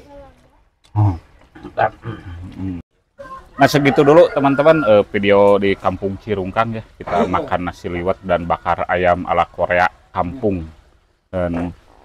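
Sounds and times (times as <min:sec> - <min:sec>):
man humming vocalization: 0:01.0 - 0:02.8
man exclaiming: 0:07.0 - 0:09.1.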